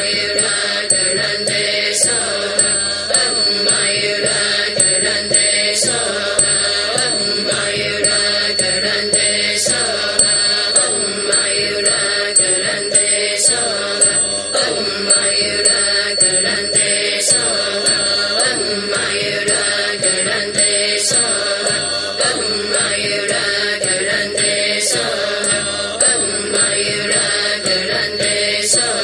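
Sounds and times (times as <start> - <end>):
voices chanting a melody: 0.0 - 29.0.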